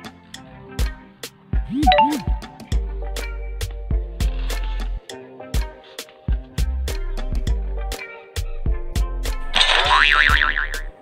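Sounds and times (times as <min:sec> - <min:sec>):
background music with beat: 0:00.0 - 0:11.0
cartoon boing: 0:09.9 - 0:10.8.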